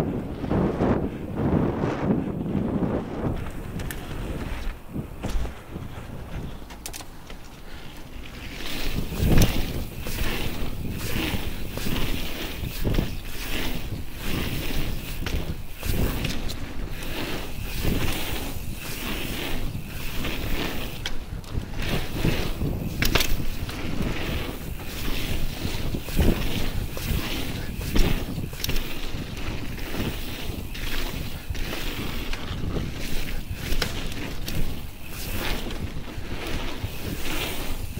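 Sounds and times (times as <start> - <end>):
wind buffeting microphone: 0.0 - 37.9
bike knocks and rattles: 3.2 - 37.9.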